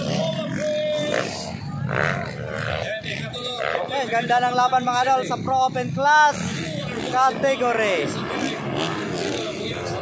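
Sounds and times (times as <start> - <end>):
dirt bike engines revving: 0.0 - 10.0.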